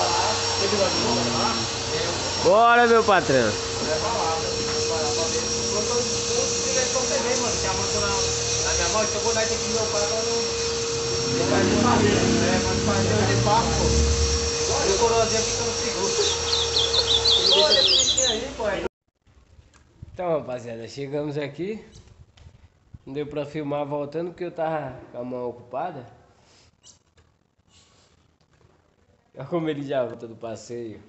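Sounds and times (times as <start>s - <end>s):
electric hair clipper humming: 0.0s - 17.7s
bird chirping: 16.1s - 18.6s.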